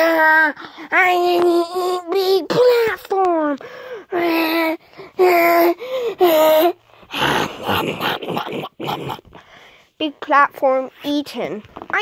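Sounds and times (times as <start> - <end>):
child making pretend eating noises: 0.0 - 9.2, 10.0 - 12.0.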